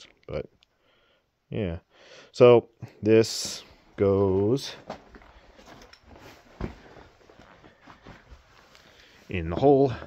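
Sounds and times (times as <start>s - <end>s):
faint footsteps: 3.3s - 10.0s
handling noises: 3.3s - 10.0s.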